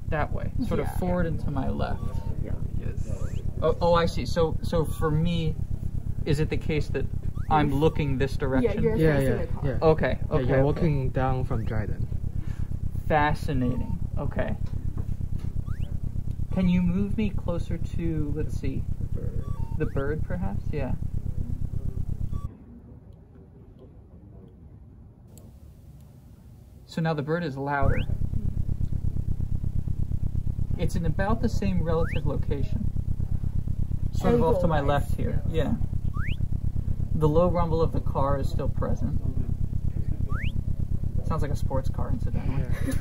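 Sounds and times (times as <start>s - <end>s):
synthesized car engine rumble: 0.0s - 24.4s, 27.6s - 43.0s
synthesized bird chirp: 0.6s - 5.2s, 7.2s - 8.2s, 13.5s - 14.2s, 15.6s - 16.0s, 19.3s - 20.7s, 22.2s - 22.5s, 27.8s - 28.2s, 31.6s - 32.6s, 36.0s - 36.5s, 40.2s - 40.7s.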